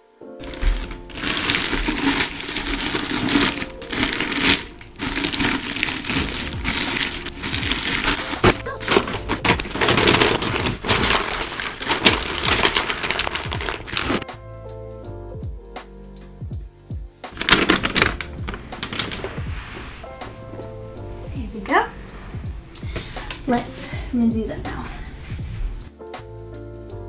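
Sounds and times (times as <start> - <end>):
plastic bin liner rustling: 0.4 - 14.2, 17.4 - 20.9.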